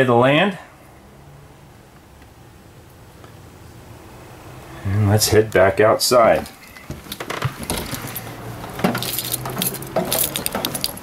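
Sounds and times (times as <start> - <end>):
footsteps on metal steps: 6.3 - 11.0
small rattles and clinks: 6.5 - 11.0.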